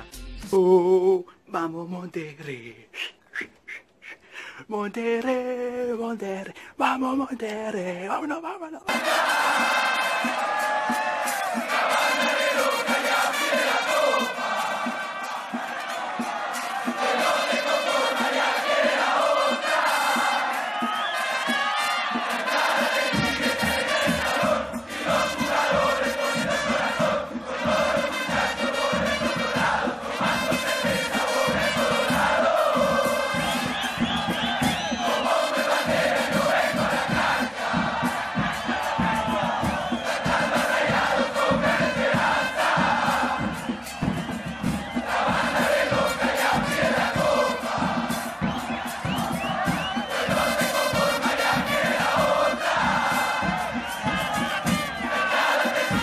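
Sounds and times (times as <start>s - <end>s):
crowd chanting and singing: 5.2s - 56.0s
bass drum beats: 8.9s - 56.0s.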